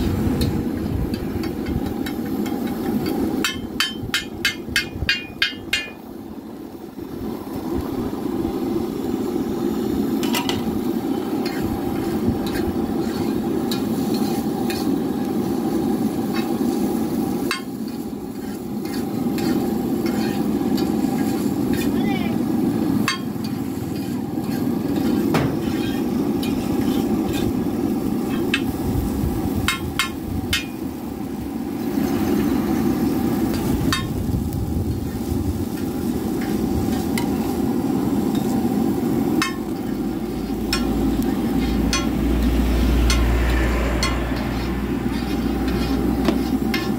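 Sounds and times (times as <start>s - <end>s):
noodles frying: 0.0s - 46.9s
metal spatula scraping griddle: 10.2s - 22.2s, 23.0s - 28.8s, 34.9s - 37.6s, 38.3s - 46.9s.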